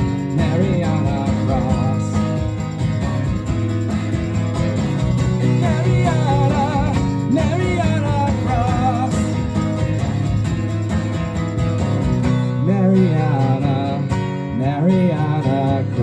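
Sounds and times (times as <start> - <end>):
strummed acoustic guitar: 0.0 - 16.0.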